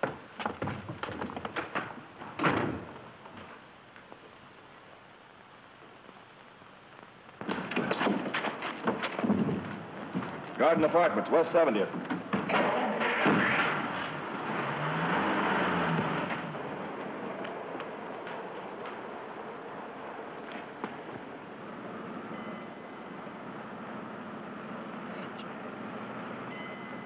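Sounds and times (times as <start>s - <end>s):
car engine pulling away: 12.5s - 27.0s.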